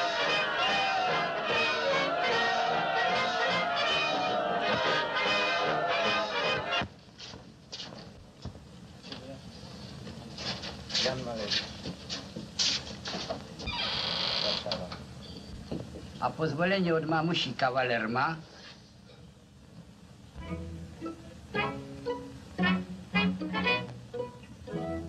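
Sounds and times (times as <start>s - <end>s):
brass band playing loudly: 0.0s - 6.8s.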